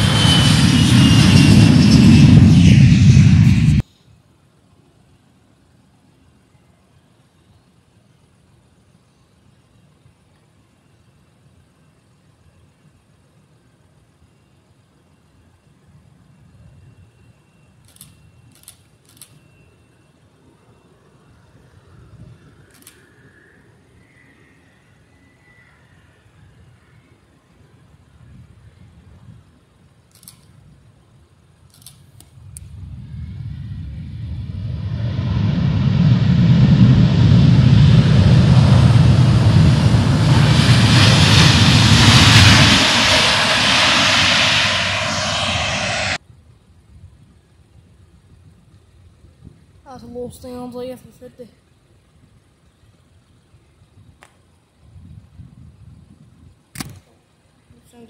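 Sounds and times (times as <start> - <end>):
jet engines rumbling: 0.0 - 3.8, 20.1 - 46.3.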